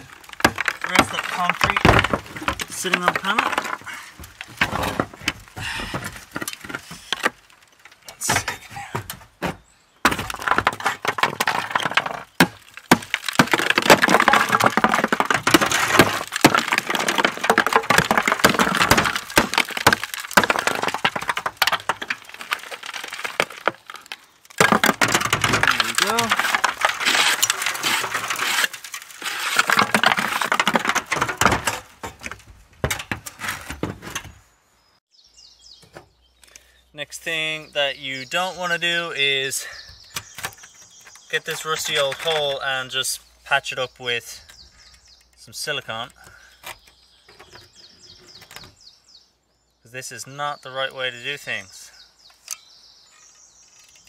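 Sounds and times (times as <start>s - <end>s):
crumbling concrete clatter: 0.0s - 34.3s.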